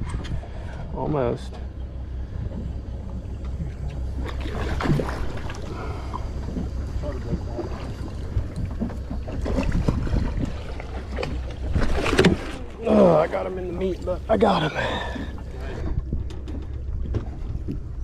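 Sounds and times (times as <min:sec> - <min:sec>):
boat engine rumble: 0:00.0 - 0:18.0
splash in water: 0:04.2 - 0:05.7
wind on microphone: 0:04.4 - 0:12.5, 0:14.0 - 0:18.0.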